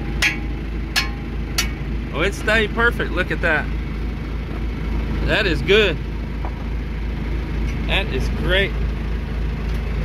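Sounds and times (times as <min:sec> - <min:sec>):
tractor engine idling: 0:00.0 - 0:10.0.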